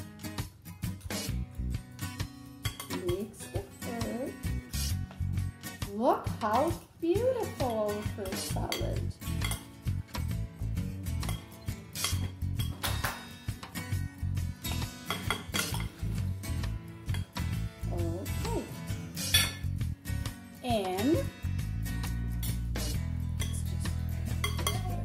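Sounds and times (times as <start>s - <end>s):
spoons clinking against glass bowl: 2.6s - 3.4s, 7.5s - 9.9s, 11.2s - 13.2s, 14.7s - 16.2s, 17.1s - 17.5s, 19.2s - 19.8s, 22.4s - 25.0s.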